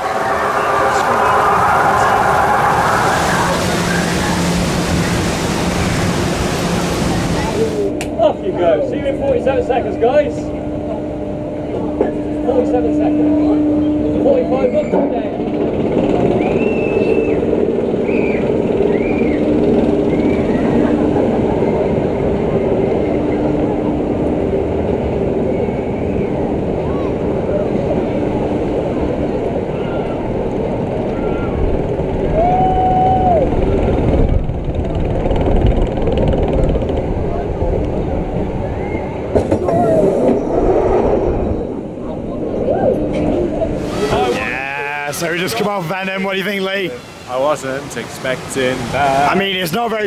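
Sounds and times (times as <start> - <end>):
ride mechanical rumble: 0.0 - 50.0.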